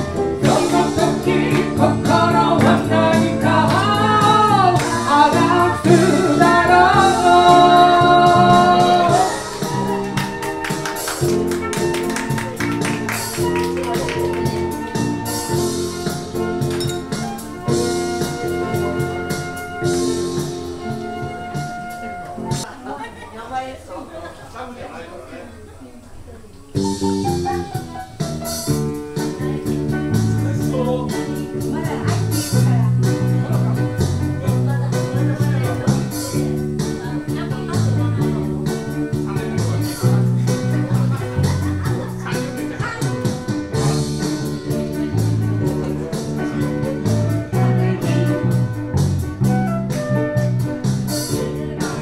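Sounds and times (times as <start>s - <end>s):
person singing: 0.0s - 10.1s, 28.7s - 32.8s, 33.4s - 48.6s
electric bass: 0.0s - 22.6s, 26.8s - 52.0s
keyboard: 0.0s - 22.7s, 26.8s - 52.0s
live band playing: 0.0s - 22.7s, 26.7s - 52.0s
steady beat: 0.0s - 22.7s, 26.8s - 52.0s
soft voices: 0.0s - 52.0s
woman singing into microphone: 0.4s - 9.6s.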